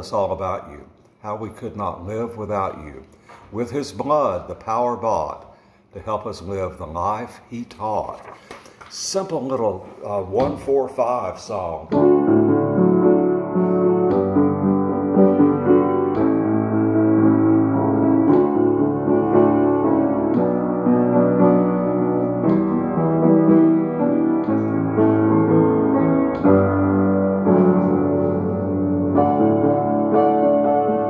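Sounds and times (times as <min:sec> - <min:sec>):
grand piano slow chords: 0:10.3 - 0:31.0.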